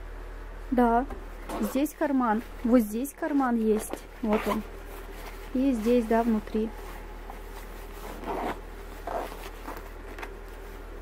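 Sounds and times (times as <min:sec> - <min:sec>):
jacket zipper being pulled: 0:03.8 - 0:05.5, 0:07.3 - 0:10.3.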